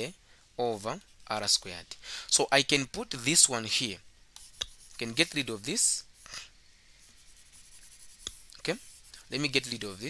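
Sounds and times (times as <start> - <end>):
stylus scratching on tablet: 4.4 - 6.4, 7.0 - 10.0.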